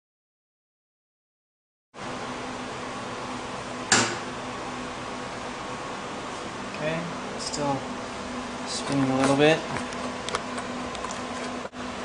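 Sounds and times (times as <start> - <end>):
steady hum: 2.0 - 12.0.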